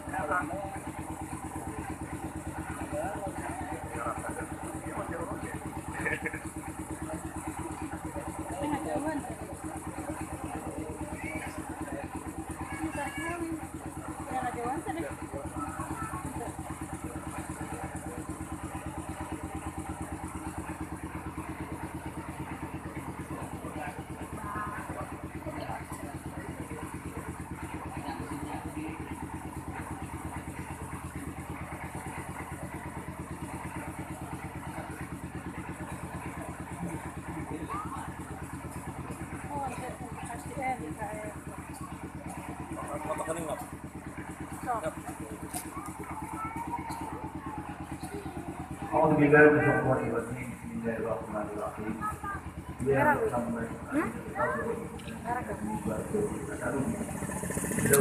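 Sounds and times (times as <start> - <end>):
faint low voices: 0.0 - 58.0
small engine idling: 0.0 - 58.0.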